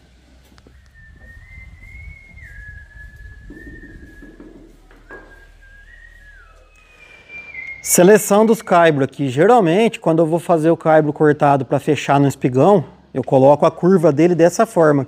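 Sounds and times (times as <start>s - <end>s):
person whistling a tune: 0.7s - 9.0s.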